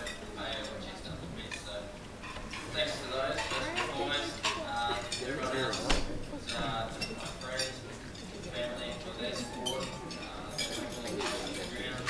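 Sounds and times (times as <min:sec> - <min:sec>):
murmur of many voices: 0:00.0 - 0:12.0
cutlery and dishes clinking: 0:03.3 - 0:12.0.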